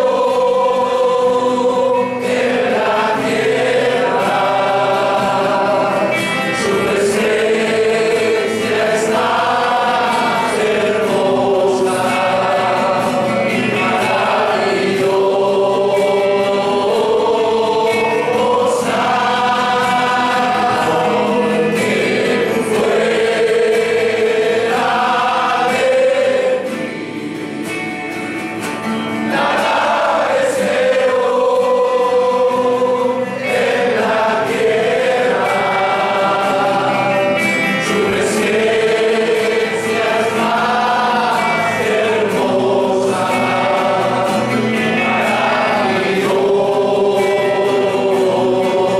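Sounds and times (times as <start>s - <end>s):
congregation singing a hymn: 0.0s - 48.9s
guitars: 0.0s - 48.9s.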